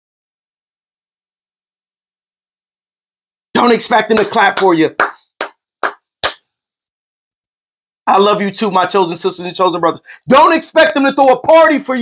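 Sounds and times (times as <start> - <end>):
hand claps: 3.6 - 6.5.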